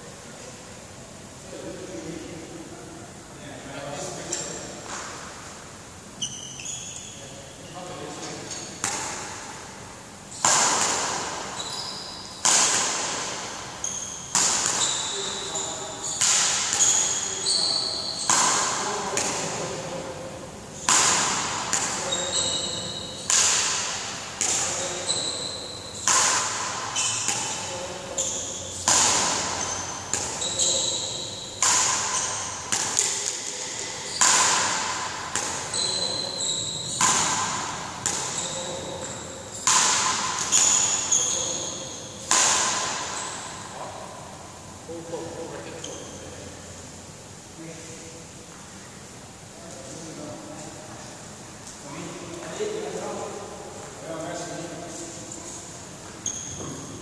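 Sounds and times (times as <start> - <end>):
shoes squeaking: 6.2 - 9.2, 10.3 - 19.8, 20.7 - 44.0, 45.6 - 46.4, 54.9 - 57.0
badminton rackets hitting shuttlecock: 8.5 - 20.2, 20.8 - 43.8.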